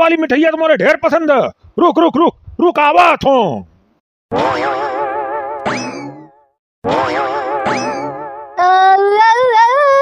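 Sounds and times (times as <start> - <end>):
cartoon boing sound effect: 4.3 - 8.6.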